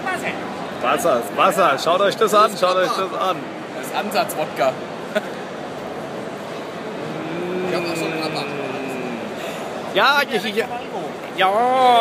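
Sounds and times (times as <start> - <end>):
hall background noise: 0.0 - 12.0
man singing long note: 7.1 - 9.4.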